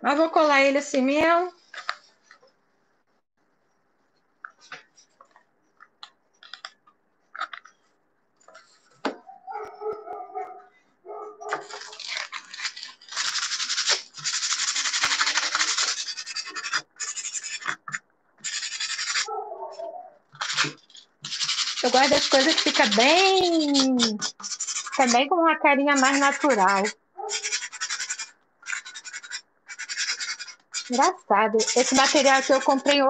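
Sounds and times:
faint clicks and taps: 0:04.1 - 0:10.6
hands rubbing wood: 0:11.4 - 0:25.2, 0:25.9 - 0:33.0.

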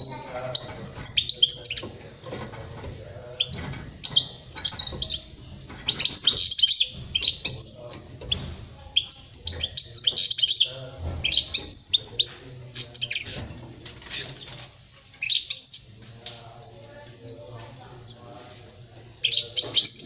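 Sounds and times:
goldfinch twittering song: 0:00.0 - 0:12.3.

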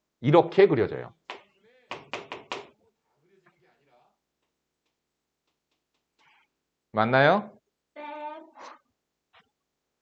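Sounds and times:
chalk tapping and clicking: 0:01.3 - 0:02.8.

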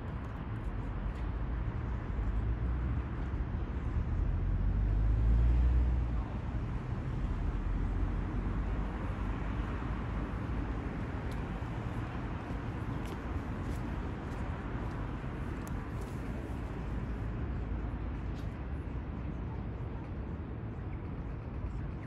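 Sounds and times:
traffic noise: 0:00.0 - 0:22.0.

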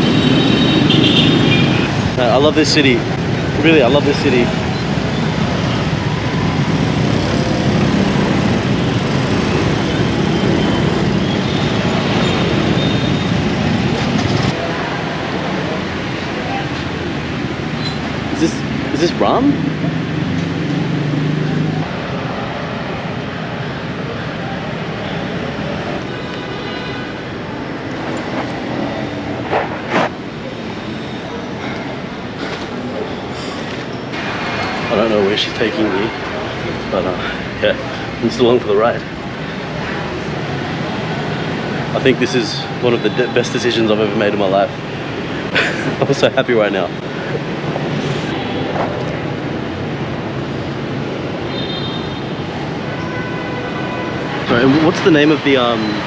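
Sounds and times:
busy street traffic: 0:00.0 - 0:56.0
tyres on road: 0:00.0 - 0:56.0
wind: 0:00.0 - 0:56.0.

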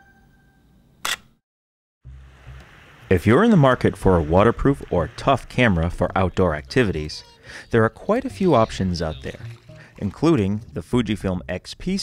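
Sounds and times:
camera shutter click: 0:01.0 - 0:01.3.

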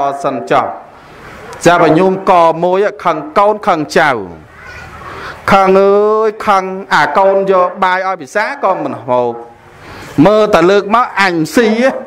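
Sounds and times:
man chanting a sermon: 0:00.0 - 0:00.9, 0:01.6 - 0:04.4, 0:05.4 - 0:09.6, 0:10.2 - 0:12.0.

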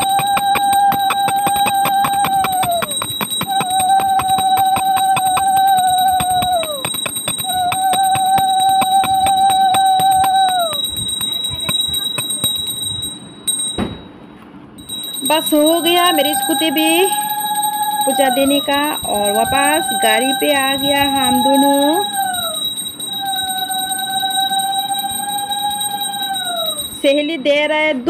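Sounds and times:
conch shell blown: 0:00.0 - 0:12.8
hand bell rung rapidly: 0:00.0 - 0:13.8, 0:14.8 - 0:27.3.

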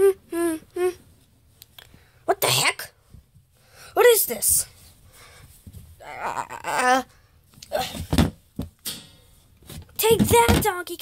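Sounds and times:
plush toys knocking on hard surface: 0:09.7 - 0:10.7.

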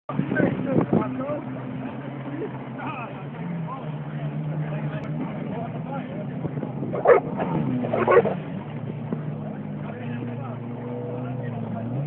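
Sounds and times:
small boat engine running: 0:00.1 - 0:12.0.

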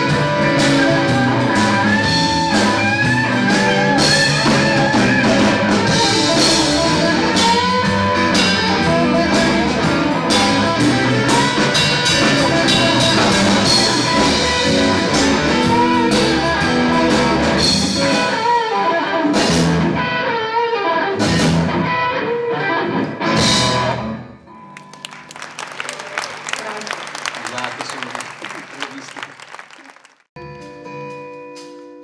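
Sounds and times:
blues-rock band playing: 0:00.0 - 0:28.3.

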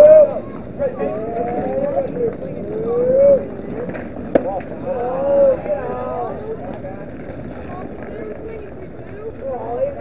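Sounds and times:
voices shouting drawn-out calls: 0:00.0 - 0:10.0.

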